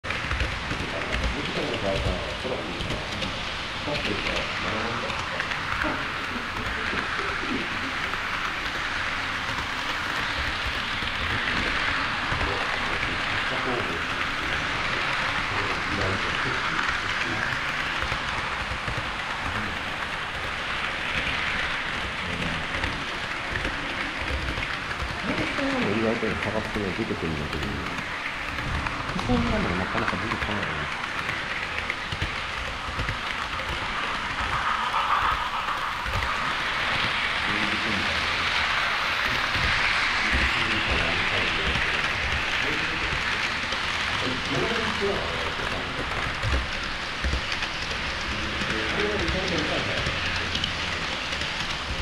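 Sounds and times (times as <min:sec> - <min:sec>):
model train wheels on rail: 0:00.0 - 0:52.0.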